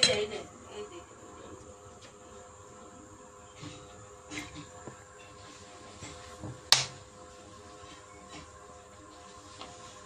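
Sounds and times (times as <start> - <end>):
faint steady hum: 0.0 - 10.0
sharp snap: 6.7 - 7.0.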